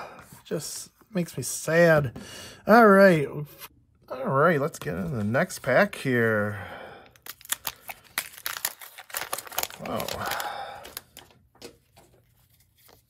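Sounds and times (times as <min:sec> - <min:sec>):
card pack tearing open: 0:07.1 - 0:11.4.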